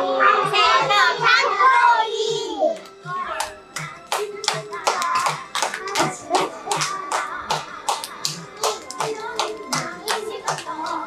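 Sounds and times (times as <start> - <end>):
hands clapping in rhythm: 2.8 - 11.0.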